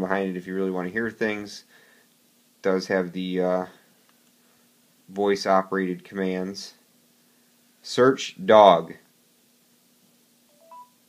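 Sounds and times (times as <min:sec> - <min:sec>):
faint steady hum: 0:00.0 - 0:11.0
rising three-note electronic beep: 0:10.6 - 0:11.0.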